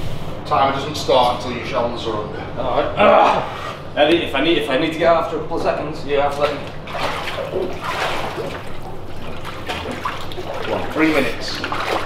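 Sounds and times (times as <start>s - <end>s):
steady low hum: 0.0s - 12.0s
water trickling and lapping: 6.3s - 12.0s.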